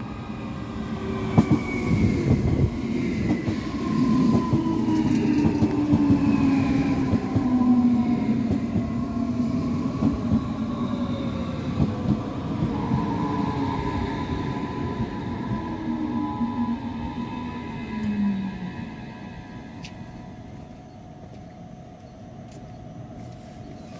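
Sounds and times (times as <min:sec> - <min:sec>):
steady high tone: 0:00.0 - 0:23.6.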